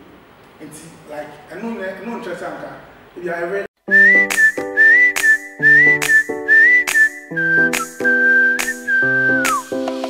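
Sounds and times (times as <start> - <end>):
held backing chords: 3.9 - 10.0
whistled melody: 3.9 - 10.0
sharp percussive hits: 4.2 - 10.0.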